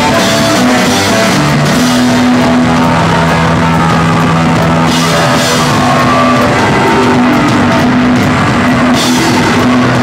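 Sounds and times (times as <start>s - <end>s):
drum kit: 0.0s - 10.0s
electric guitar: 0.0s - 10.0s.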